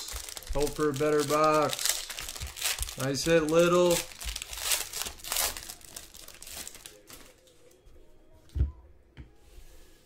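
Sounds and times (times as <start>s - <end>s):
foil wrapper crinkling and tearing: 0.0s - 7.5s.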